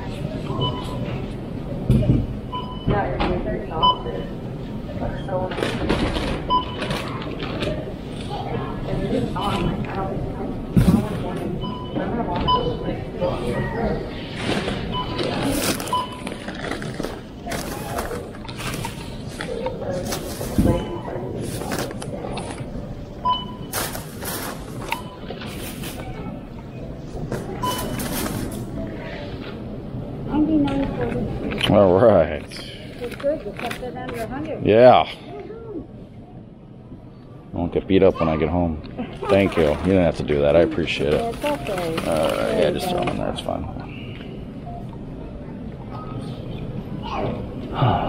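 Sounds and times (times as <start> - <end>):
short electronic beeps: 0.5 - 1.1, 3.8 - 4.4, 14.9 - 16.4, 27.6 - 28.1
plastic bags rustling: 14.4 - 22.7, 23.6 - 26.2, 41.1 - 43.0
barcode scanner beeping: 14.9 - 16.7, 23.2 - 23.7, 24.8 - 25.4, 27.6 - 28.1
plastic bags crinkling: 41.3 - 42.9.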